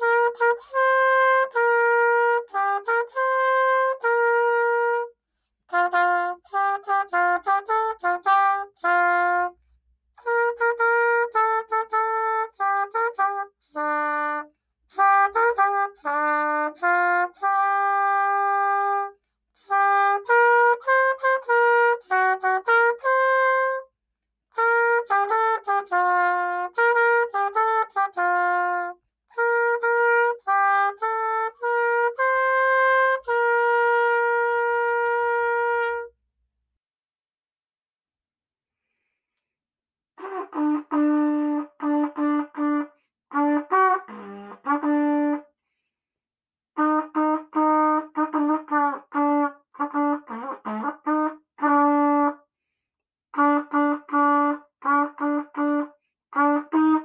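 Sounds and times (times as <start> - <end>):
trumpet playing a melody: 0.0 - 36.3, 40.2 - 45.9, 46.7 - 57.0.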